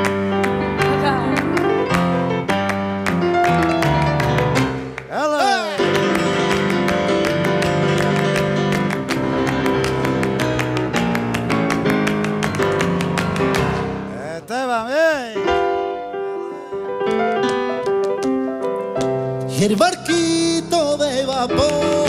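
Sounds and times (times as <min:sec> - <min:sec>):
rhythmic hand claps: 0:00.0 - 0:14.0, 0:17.1 - 0:19.2, 0:21.2 - 0:22.0
grand piano playing flamenco: 0:00.0 - 0:22.0
singer's wavering cry: 0:05.1 - 0:05.9.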